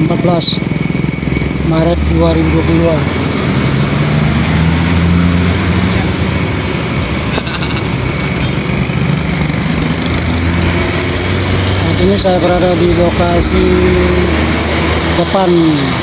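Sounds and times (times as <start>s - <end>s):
motorcycle passing: 0.0s - 16.0s
vehicle engine idling: 0.0s - 16.0s.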